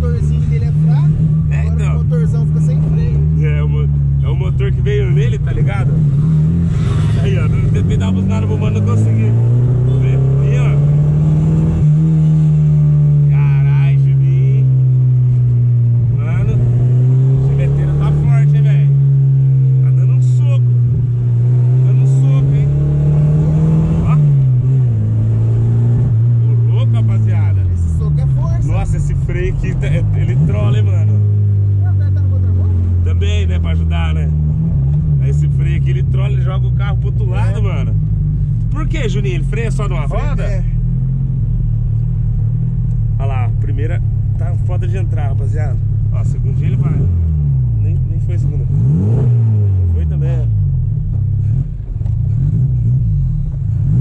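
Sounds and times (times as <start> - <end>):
car engine while driving: 0.0 - 54.0.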